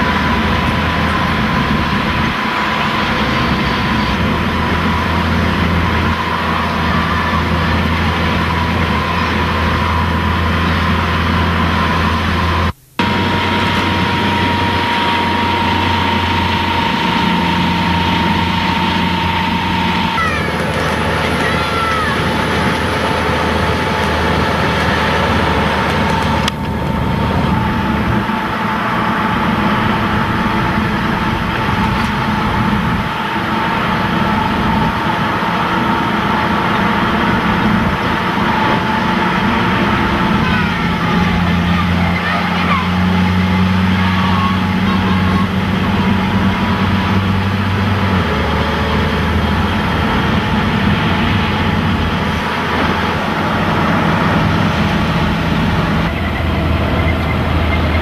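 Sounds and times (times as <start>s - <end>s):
armored vehicle diesel engine droning: 0.0s - 58.0s.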